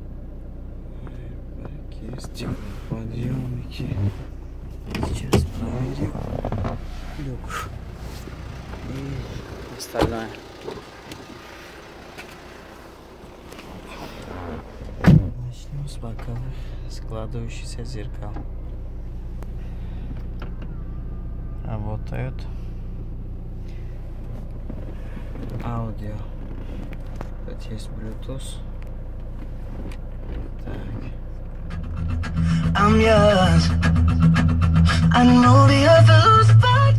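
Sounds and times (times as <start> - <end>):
car engine idling: 0.0 - 36.9.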